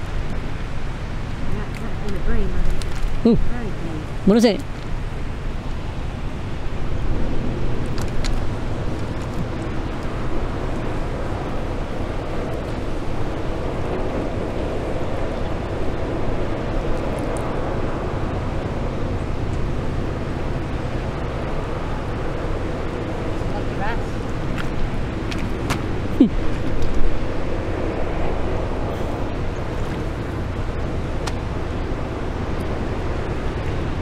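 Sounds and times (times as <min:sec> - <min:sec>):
ship engine rumbling: 0:00.0 - 0:34.0
wind on microphone: 0:00.0 - 0:34.0.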